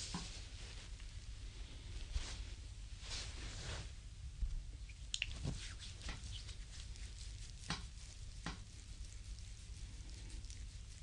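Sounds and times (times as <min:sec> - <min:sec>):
wet skin rubbing: 0:05.1 - 0:11.0.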